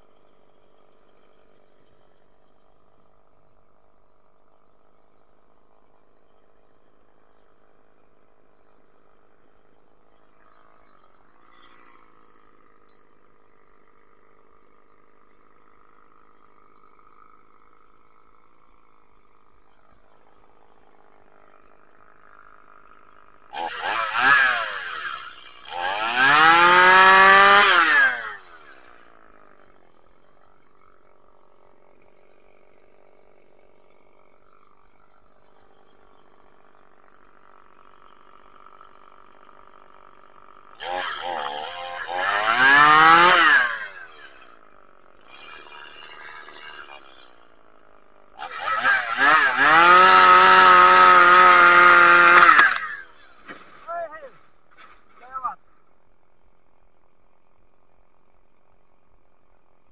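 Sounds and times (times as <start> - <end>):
chainsaw idling and revving: 0.0 - 59.9.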